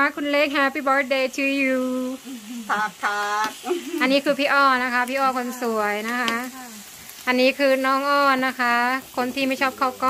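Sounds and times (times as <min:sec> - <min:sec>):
food sizzling in hot fat: 0:00.0 - 0:10.0
women's voices: 0:00.0 - 0:10.0.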